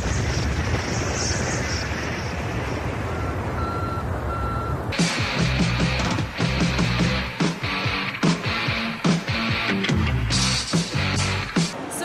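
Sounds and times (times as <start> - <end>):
radio static hiss and rumble: 0.0 - 6.2
short electronic beeps: 3.1 - 4.8.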